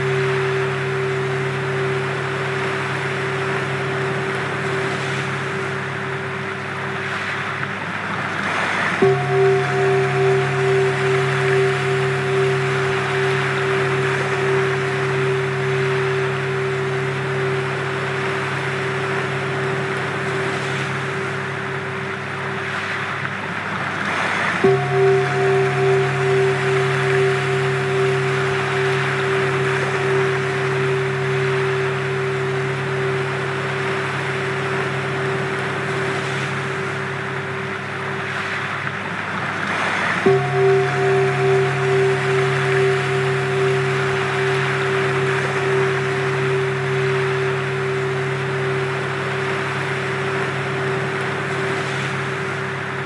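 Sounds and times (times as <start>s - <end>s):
steady pure tones: 0.0s - 53.0s
surf-like noise: 0.0s - 53.0s.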